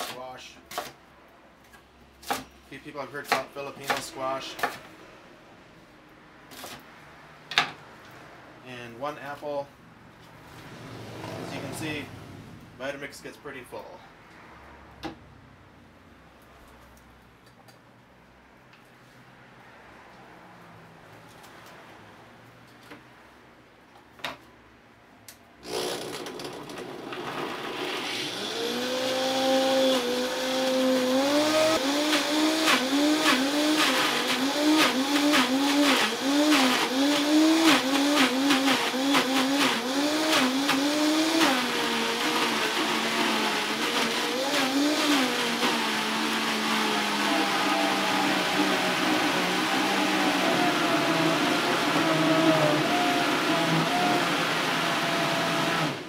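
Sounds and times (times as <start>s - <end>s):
blender motor grinding: 25.6s - 56.0s.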